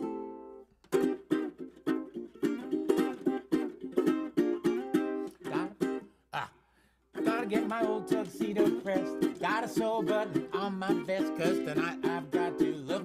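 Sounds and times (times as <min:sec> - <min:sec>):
resonator ukulele strumming: 0:00.0 - 0:06.2, 0:07.1 - 0:13.0.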